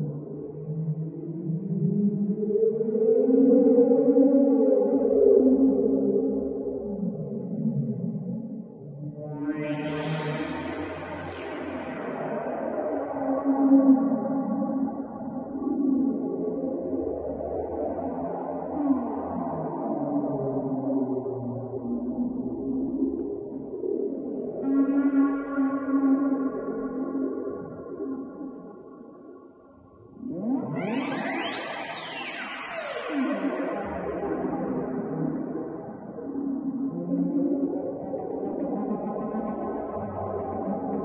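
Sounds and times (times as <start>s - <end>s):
synthesizer drone: 30.0s - 33.0s, 33.8s - 41.0s.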